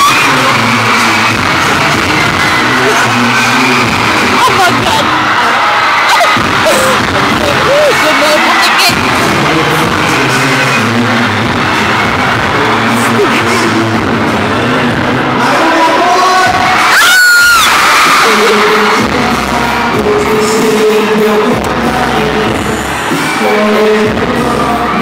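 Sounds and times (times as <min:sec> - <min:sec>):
crowd screaming and cheering: 0:00.0 - 0:25.0
loud music: 0:00.0 - 0:25.0
piercing scream close to microphone: 0:16.8 - 0:18.1.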